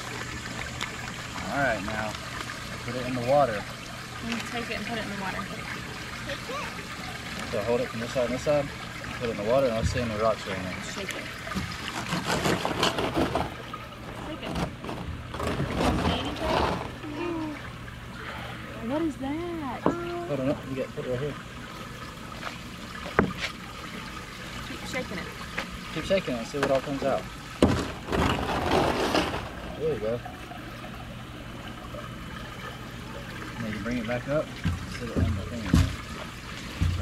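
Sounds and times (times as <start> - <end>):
water running in sluice: 0.0 - 37.0
gravel rattling and sloshing in water: 7.4 - 17.1, 26.0 - 30.4, 33.6 - 37.0.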